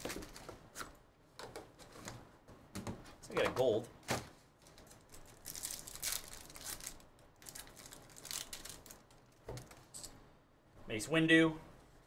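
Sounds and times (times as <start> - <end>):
wrapper crinkling and tearing: 4.6 - 9.9.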